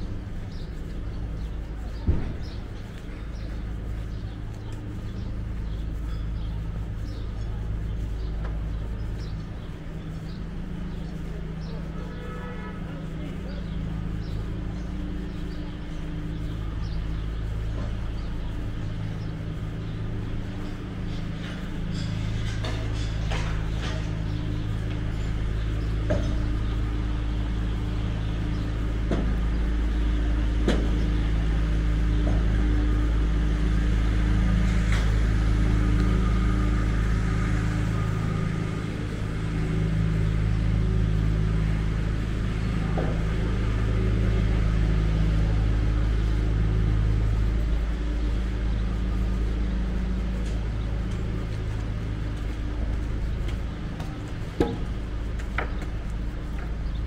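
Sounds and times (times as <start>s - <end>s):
knocks of street noise: 0.0s - 57.0s
truck engine idling: 0.0s - 57.0s.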